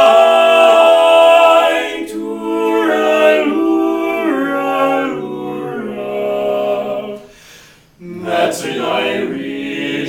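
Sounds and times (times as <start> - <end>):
male quartet singing a cappella: 0.0 - 10.0.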